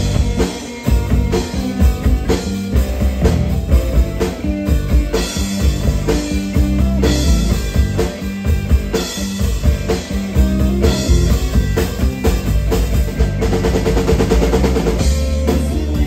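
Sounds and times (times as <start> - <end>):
fast drum fill: 0.0 - 16.0
rock band playing: 0.0 - 16.0.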